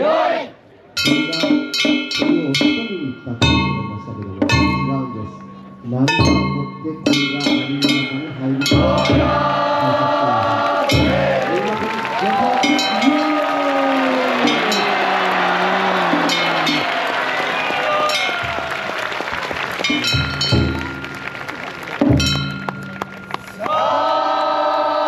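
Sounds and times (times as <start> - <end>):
voices chanting or singing: 0.0 - 0.6, 6.4 - 18.7
ringing metallic strikes: 1.0 - 10.1, 14.2 - 17.1, 19.8 - 21.4, 22.0 - 23.6.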